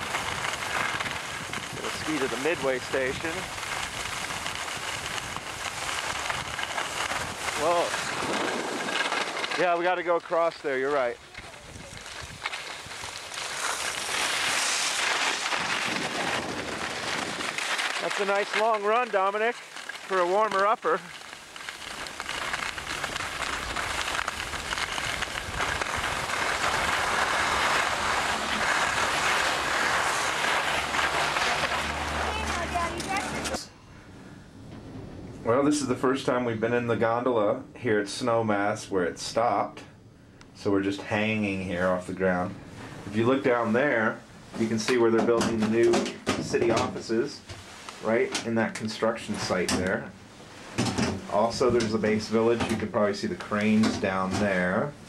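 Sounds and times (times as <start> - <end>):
wind buffeting microphone: 0.0 - 9.1, 11.0 - 13.3, 15.5 - 17.7, 22.3 - 35.8
skis sliding over snow: 0.0 - 33.7, 40.6 - 55.0
air rushing past microphone: 25.0 - 36.0.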